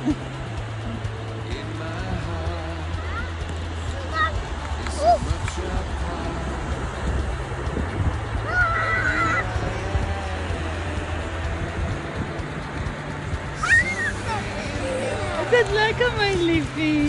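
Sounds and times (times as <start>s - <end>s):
steady low rumble: 0.0s - 17.0s
child crying: 8.4s - 9.5s, 13.6s - 15.4s
child squealing: 8.5s - 9.4s, 13.6s - 14.6s.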